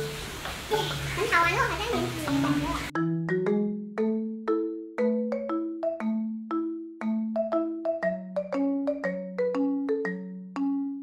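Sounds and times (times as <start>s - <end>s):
soft background music: 0.0s - 3.7s
child's voice with sliding pitch: 0.7s - 3.0s.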